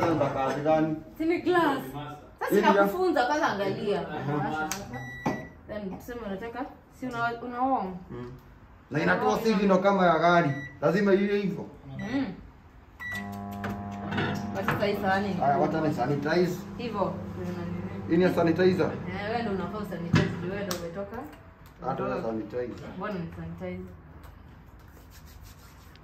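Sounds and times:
microwave keypad beeps: 5.0 - 5.6, 10.5 - 10.8, 13.0 - 14.6
microwave oven humming: 13.0 - 20.6
hands rubbing: 24.7 - 26.0.

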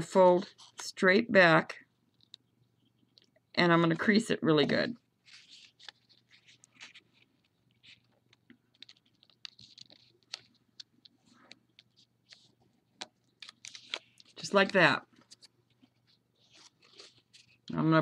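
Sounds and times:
paper crinkling: 5.2 - 17.8.

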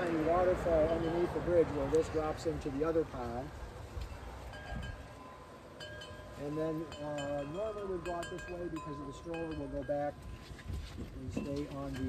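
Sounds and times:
metal wind chime ringing: 4.5 - 12.0.

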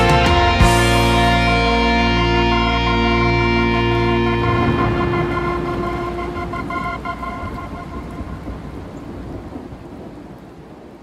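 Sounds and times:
steady rain: 0.0 - 11.0
thunder: 4.4 - 11.0.

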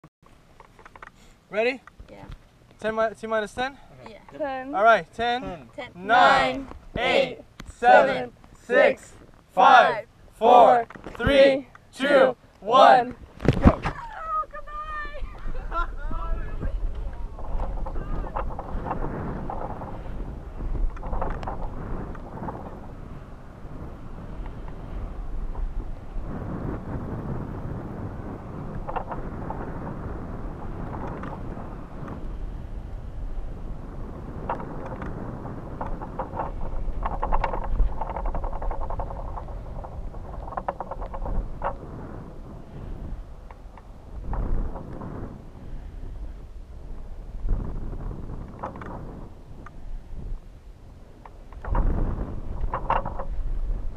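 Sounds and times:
wind buffeting microphone: 3.4 - 53.9.

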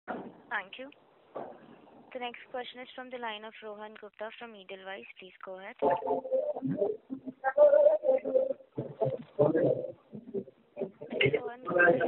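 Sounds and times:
garbled voice over telephone: 2.5 - 12.0.

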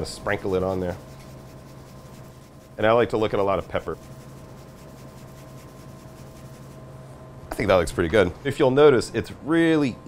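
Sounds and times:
steady low hum: 0.0 - 10.0
shaker granular rustle: 0.3 - 6.9.

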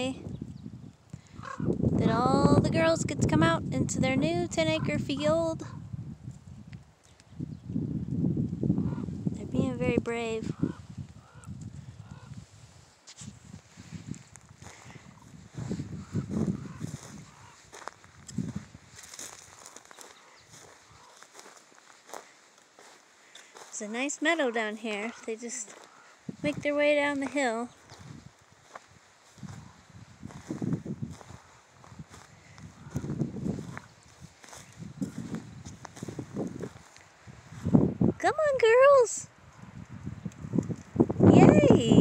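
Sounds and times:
footsteps on dry grass and brush: 10.9 - 38.0.

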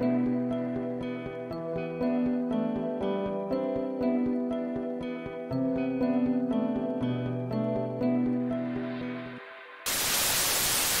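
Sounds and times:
plucked-string background music: 0.0 - 9.7
loud static hiss: 9.9 - 11.0.

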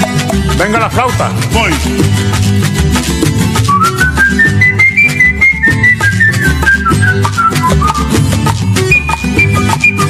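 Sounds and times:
bass line: 0.0 - 10.0
percussion: 0.0 - 10.0
flute solo: 3.7 - 8.2, 8.9 - 10.0.

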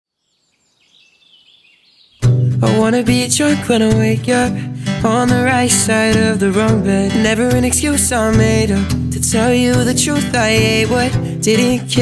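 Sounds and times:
faint bird chirping: 0.1 - 2.6.

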